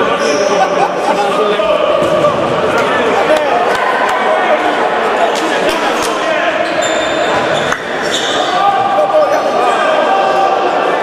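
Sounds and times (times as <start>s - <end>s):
players' voices echoing: 0.0s - 11.0s.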